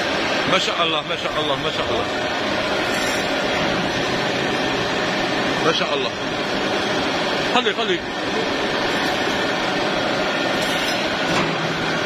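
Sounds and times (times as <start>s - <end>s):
conveyor machinery din: 0.0s - 12.0s.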